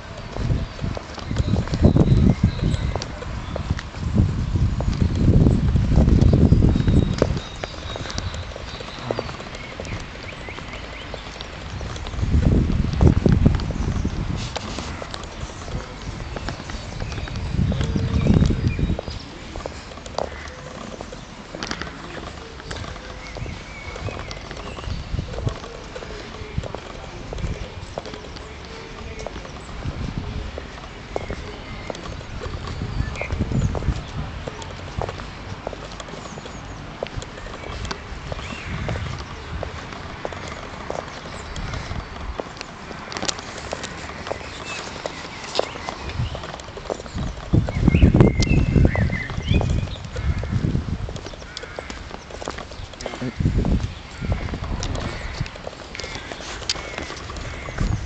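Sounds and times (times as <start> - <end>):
footsteps on paved path: 0.0 - 58.0
low rumbling on microphone: 0.0 - 58.0.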